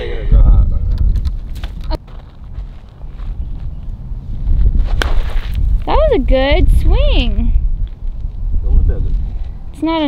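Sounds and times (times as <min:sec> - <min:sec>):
wind buffeting microphone: 0:00.0 - 0:10.0
footsteps on gravelly dirt: 0:01.3 - 0:06.0.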